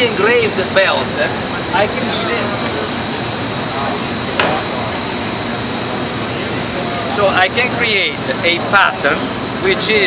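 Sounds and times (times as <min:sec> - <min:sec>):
busy hall crowd noise: 0:00.0 - 0:10.0
high machine whines: 0:00.0 - 0:10.0
machinery running: 0:00.0 - 0:10.0.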